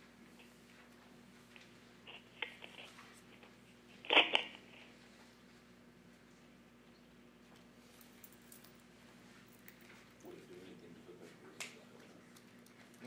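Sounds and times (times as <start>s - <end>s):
faint room hum: 0.0s - 13.0s
small clicks and rustles: 0.3s - 5.3s, 6.1s - 10.3s.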